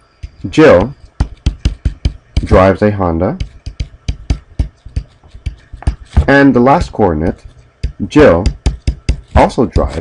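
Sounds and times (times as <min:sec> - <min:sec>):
stylus tapping on tablet screen: 0:00.1 - 0:02.7, 0:03.3 - 0:10.0.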